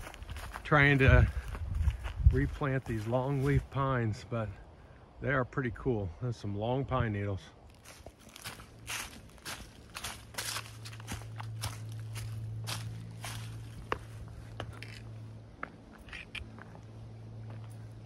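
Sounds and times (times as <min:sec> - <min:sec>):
footsteps on dry leaves: 0:00.0 - 0:03.8, 0:07.6 - 0:18.0.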